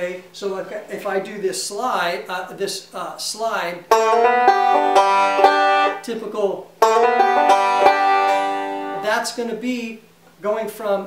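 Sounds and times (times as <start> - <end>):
banjo picking: 3.9 - 6.2, 6.8 - 9.2.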